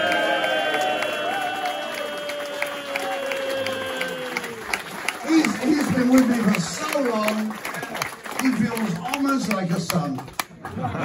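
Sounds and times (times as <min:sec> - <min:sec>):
audience applauding and cheering: 0:00.0 - 0:11.0.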